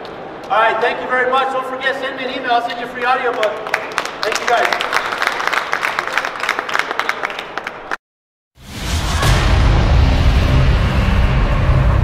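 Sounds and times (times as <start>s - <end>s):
audience applauding: 3.0s - 8.0s.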